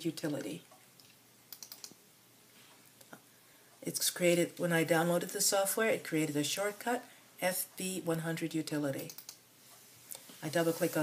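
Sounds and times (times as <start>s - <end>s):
faint low room hum: 0.0s - 11.0s
soft computer clicks: 0.3s - 2.0s, 9.0s - 9.4s.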